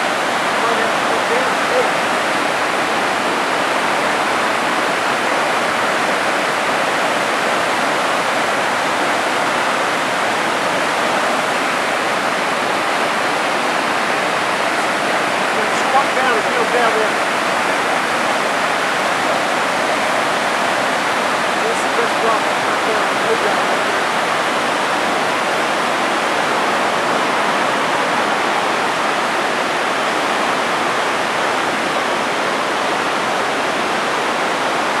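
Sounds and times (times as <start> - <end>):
water rushing over boulders: 0.0 - 35.0.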